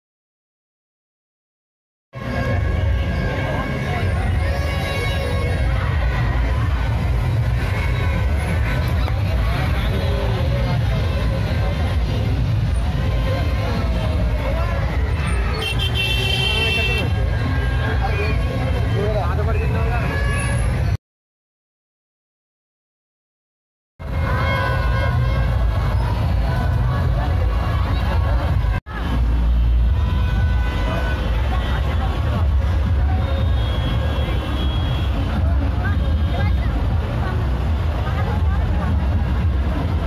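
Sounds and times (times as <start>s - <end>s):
crowd chatter: 2.2s - 21.0s, 24.0s - 40.0s
many voices: 2.2s - 21.0s, 24.0s - 40.0s
trucks low rumble: 2.2s - 21.0s, 24.0s - 40.0s.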